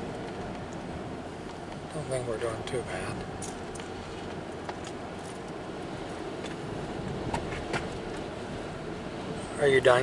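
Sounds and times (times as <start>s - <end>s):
road and engine noise in car: 0.0s - 10.0s.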